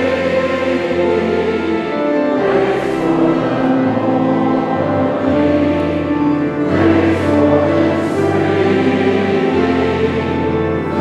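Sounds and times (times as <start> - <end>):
congregation singing: 0.0 - 11.0
instrumental accompaniment: 0.0 - 11.0.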